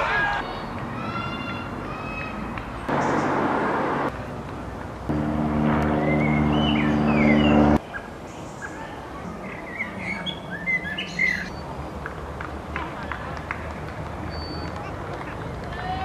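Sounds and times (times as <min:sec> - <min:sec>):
propeller plane engine humming: 0:05.1 - 0:07.8
birds chirping: 0:05.1 - 0:08.8.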